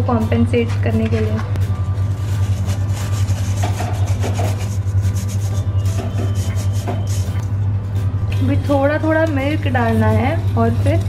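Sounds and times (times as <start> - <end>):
whisk scraping mesh strainer: 2.1 - 7.5.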